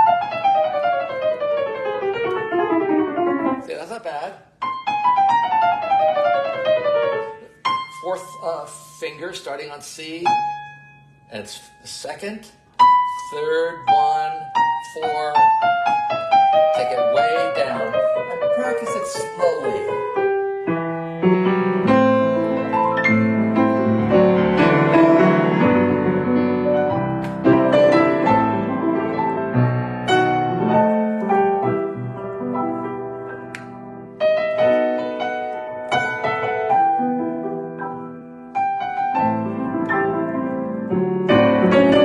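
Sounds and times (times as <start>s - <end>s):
grand piano chromatic run: 0.0s - 42.0s.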